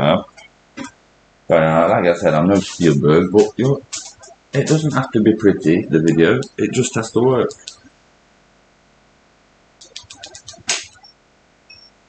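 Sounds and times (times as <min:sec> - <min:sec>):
small clicks: 0:09.8 - 0:11.0
faint high beeps: 0:10.1 - 0:12.0.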